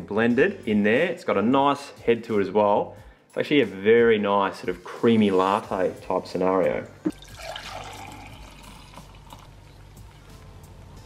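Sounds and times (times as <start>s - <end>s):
quiet music: 0.0s - 11.0s
liquid pouring into a glass: 7.1s - 9.7s.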